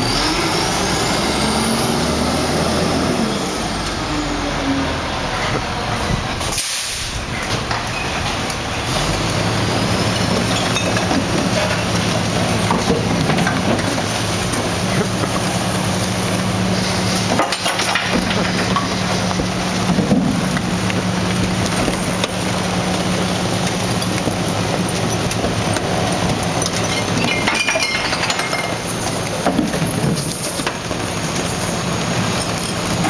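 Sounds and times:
garbage truck running: 0.0 - 33.0
trash clattering and clinking: 9.8 - 33.0.

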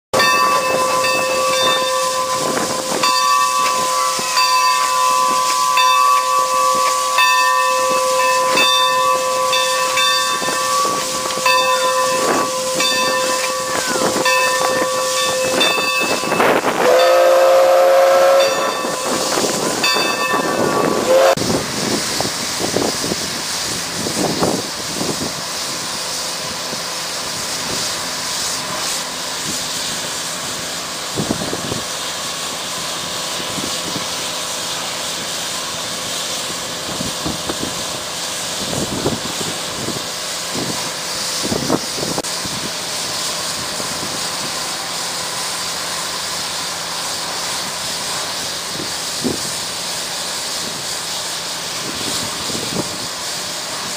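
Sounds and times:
pulsing ringing tone: 0.2 - 21.4
steam whistle blast: 0.2 - 21.6
steam locomotive hissing: 0.2 - 53.9.

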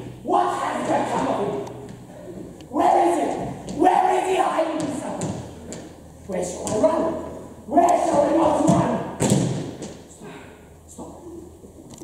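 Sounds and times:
man shouting: 0.2 - 1.6, 2.7 - 5.3, 6.7 - 9.2.

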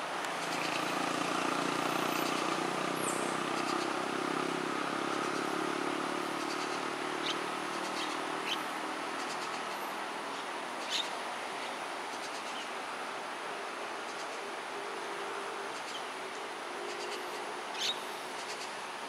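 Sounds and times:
vehicle engine passing: 0.2 - 9.0.

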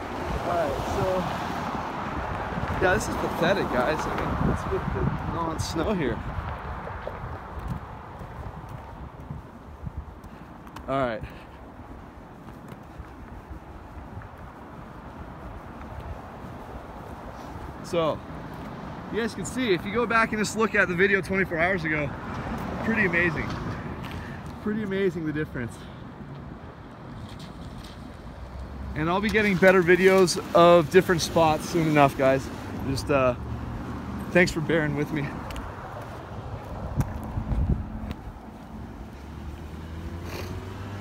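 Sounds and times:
low street rumble: 0.0 - 41.0
footsteps on pavement: 0.6 - 20.1, 22.2 - 25.2, 25.9 - 41.0.

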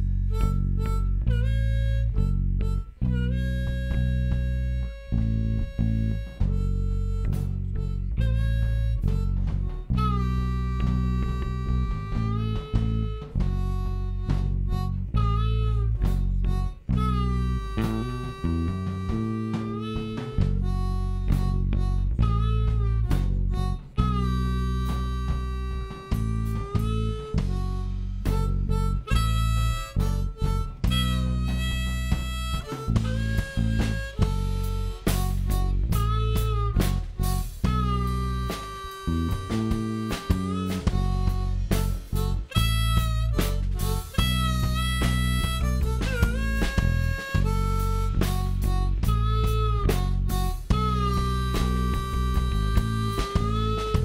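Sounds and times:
bass guitar: 0.0 - 54.0
drums: 0.0 - 54.0
electric guitar: 0.0 - 54.0
harmonica: 0.0 - 54.0.

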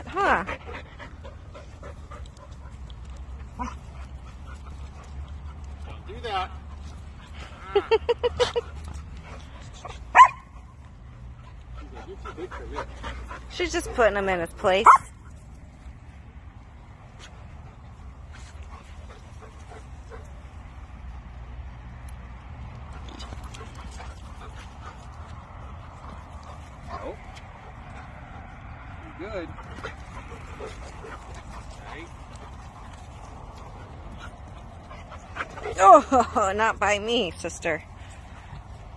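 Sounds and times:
dogs yipping: 14.8 - 15.1.

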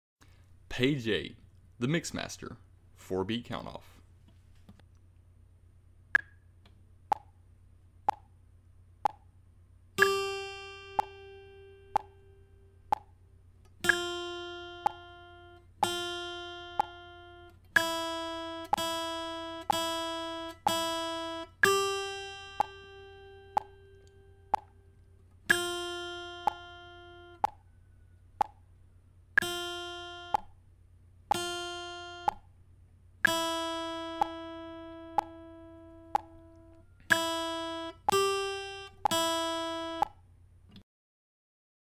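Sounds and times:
metronome clicking: 10.0 - 10.4, 11.0 - 11.2, 11.9 - 12.1, 13.8 - 14.2, 16.8 - 17.0, 22.6 - 22.8, 26.4 - 26.7, 29.4 - 29.7, 33.2 - 34.5, 35.1 - 35.4, 36.1 - 39.3
acoustic guitar single notes: 10.0 - 12.7, 13.8 - 24.9, 25.5 - 27.5, 29.4 - 30.5, 31.3 - 32.4, 33.2 - 40.1.

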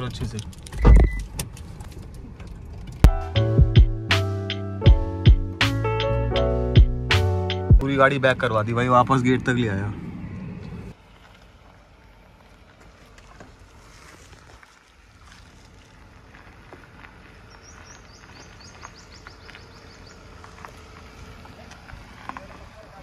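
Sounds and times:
faint car engine: 0.0 - 23.0
tyres crunching on stones: 10.9 - 23.0
bird chirping: 17.4 - 20.5.

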